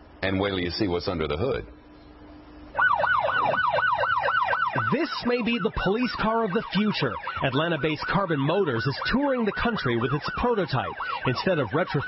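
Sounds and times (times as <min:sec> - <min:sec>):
police siren yelping: 0:02.7 - 0:12.0.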